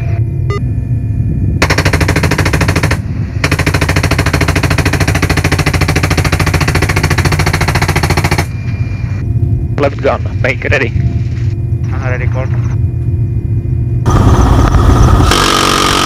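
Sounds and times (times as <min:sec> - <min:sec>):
helicopter low drone: 0:00.0 - 0:16.0
machine gun firing bursts: 0:01.6 - 0:08.5.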